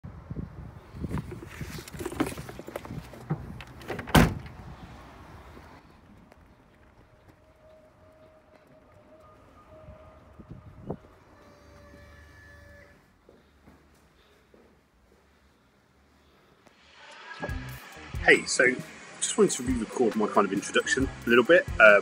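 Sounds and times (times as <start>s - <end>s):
car tailgate slamming shut: 3.8s - 4.6s.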